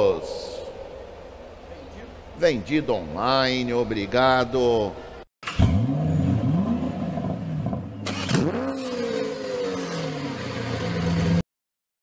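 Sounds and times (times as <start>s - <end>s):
car engine revving: 5.5s - 11.4s.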